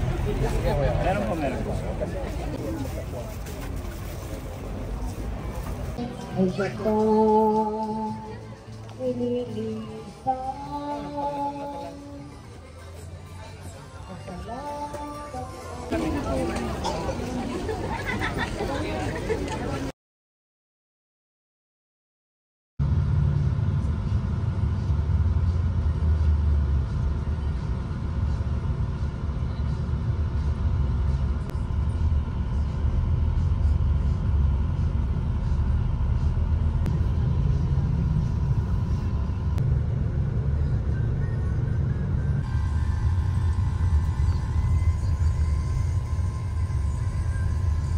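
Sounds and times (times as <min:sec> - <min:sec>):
bus engine and road rumble: 0:00.0 - 0:19.9, 0:22.8 - 0:47.9.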